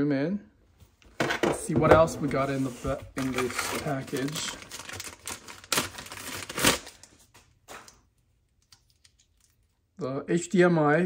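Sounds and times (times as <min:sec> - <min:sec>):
plastic bag crinkling: 0:02.9 - 0:08.0.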